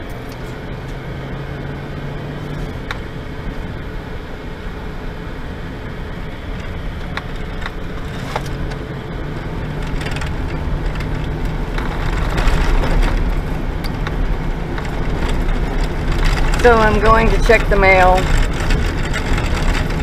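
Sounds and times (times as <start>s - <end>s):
engine and tyre rumble: 0.0s - 20.0s
cab rattles and knocks: 6.6s - 20.0s.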